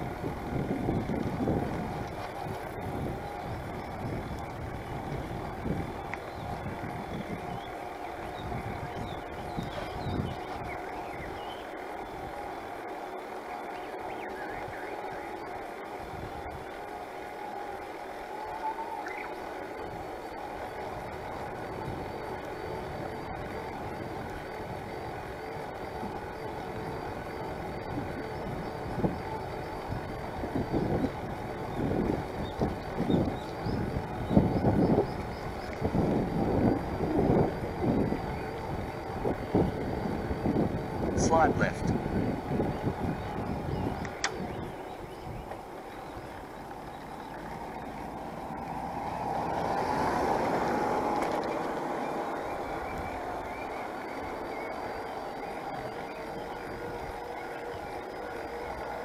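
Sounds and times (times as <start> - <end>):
wind noise on microphone: 0.0 - 12.8, 14.4 - 17.0, 18.9 - 59.0
faint high steady tone: 0.0 - 59.0.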